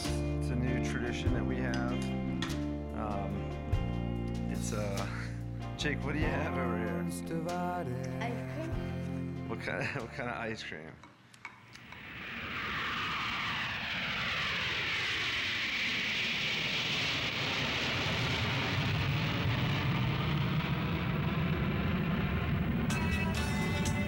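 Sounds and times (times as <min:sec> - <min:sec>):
low rumble: 0:11.8 - 0:24.0
slow falling sweep: 0:11.8 - 0:24.0
steady rushing noise: 0:11.8 - 0:24.0.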